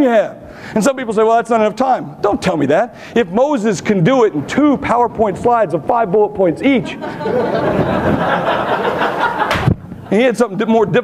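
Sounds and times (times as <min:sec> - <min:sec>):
audience laughing: 0:06.8 - 0:10.3.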